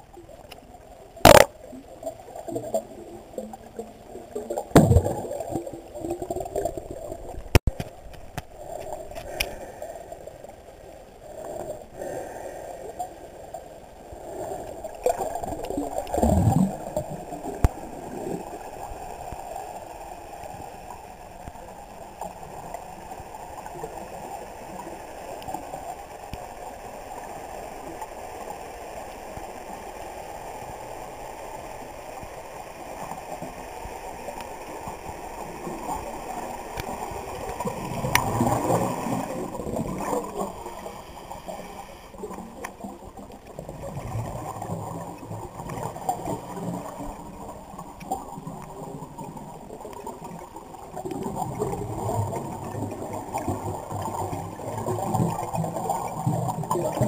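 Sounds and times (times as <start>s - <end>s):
muffled underwater water rush: 0.0s - 57.0s.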